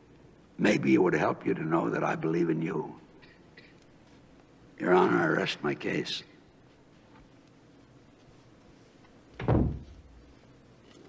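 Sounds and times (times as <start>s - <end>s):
heavy door slamming: 9.4s - 10.2s.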